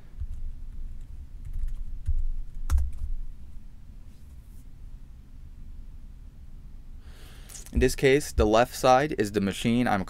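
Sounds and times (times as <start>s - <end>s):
dull low thumps: 7.7s - 8.7s.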